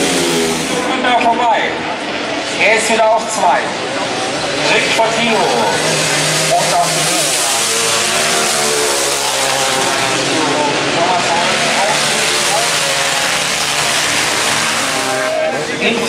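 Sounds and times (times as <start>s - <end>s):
racing motorcycle engines droning: 0.0s - 16.0s.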